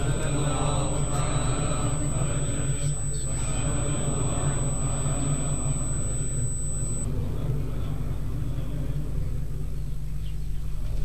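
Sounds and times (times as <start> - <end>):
faint murmur: 0.0 - 7.1
thin high-pitched whine: 0.0 - 7.1.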